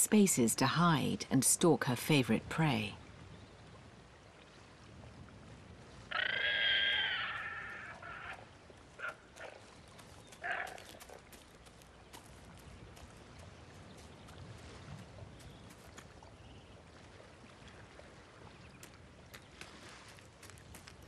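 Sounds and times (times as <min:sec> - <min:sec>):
animal calls: 0:06.1 - 0:09.7, 0:10.4 - 0:11.2.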